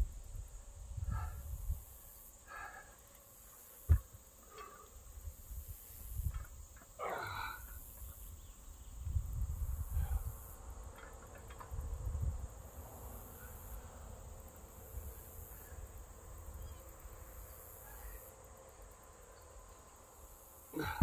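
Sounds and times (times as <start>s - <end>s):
insects trilling: 0.1s - 21.0s.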